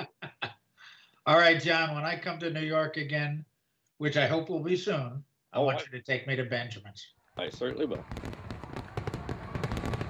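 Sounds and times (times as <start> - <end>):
fireworks crackling: 7.4 - 10.0.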